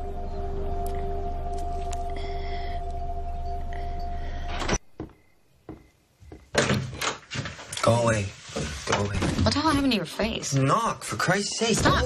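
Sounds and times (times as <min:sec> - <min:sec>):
door banging open: 0:06.4 - 0:07.7.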